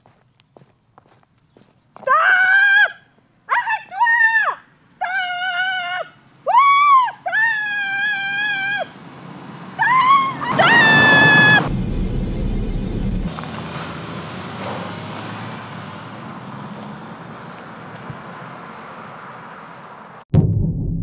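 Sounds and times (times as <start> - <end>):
footsteps on gravel: 0.0 - 2.1
woman's high-pitched wordless cries: 2.1 - 8.9.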